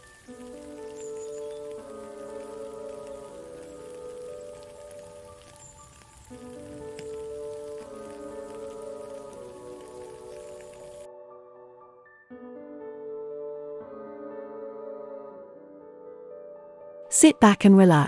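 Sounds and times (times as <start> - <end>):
steady rain: 0.0 - 11.1
soft ambient music chords: 0.0 - 17.1.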